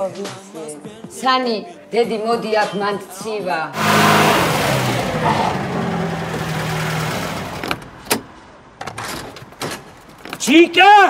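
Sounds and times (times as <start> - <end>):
vehicle engine running: 3.8 - 8.1.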